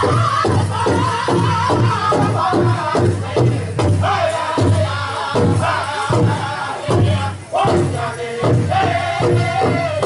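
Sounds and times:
high wavering group singing: 0.0s - 10.0s
large drum steady beat: 0.0s - 10.0s.

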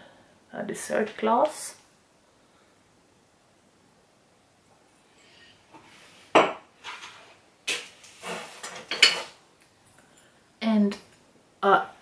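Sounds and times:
dishes and glassware clinking: 8.6s - 9.4s.

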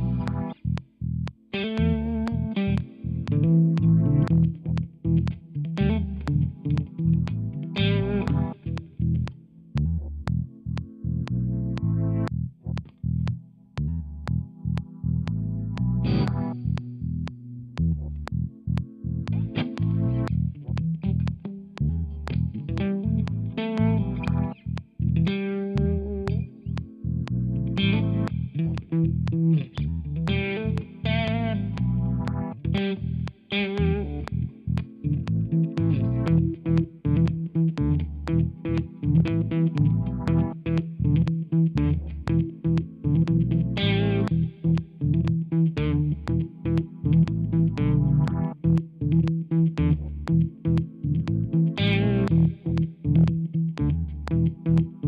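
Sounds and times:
bass guitar line: 0.0s - 55.0s
electric guitar choppy chords: 0.0s - 55.0s.

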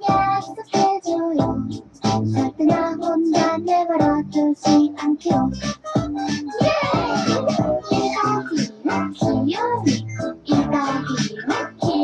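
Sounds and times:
high voice singing pop song: 0.0s - 12.0s
light musical backing: 0.0s - 12.0s.

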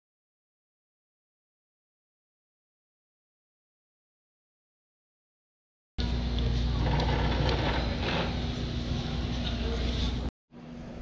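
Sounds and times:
low rumble and hum of hall air: 6.0s - 11.0s.

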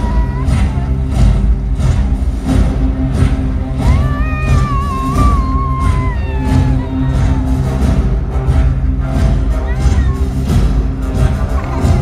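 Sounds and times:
march music over speakers: 0.0s - 12.0s.

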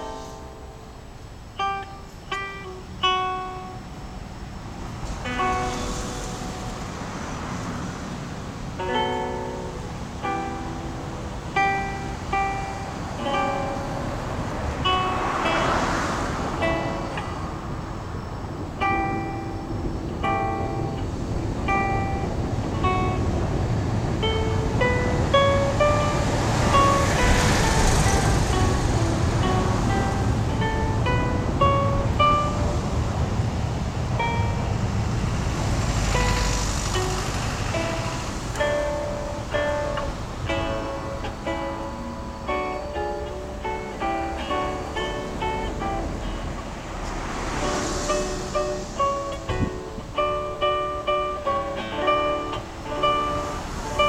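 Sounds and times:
fingerpicked acoustic guitar: 0.0s - 54.0s.

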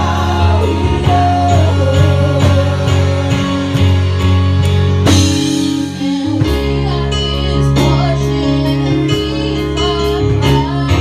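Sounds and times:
live worship band music: 0.0s - 11.0s.

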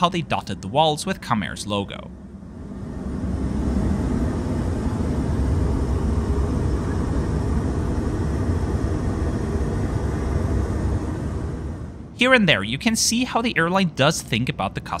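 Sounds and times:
airplane cabin noise: 0.0s - 15.0s.

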